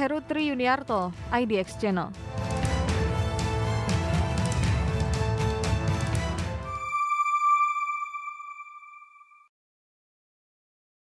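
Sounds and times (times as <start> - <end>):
ringing chime-like tone: 6.7 - 9.5.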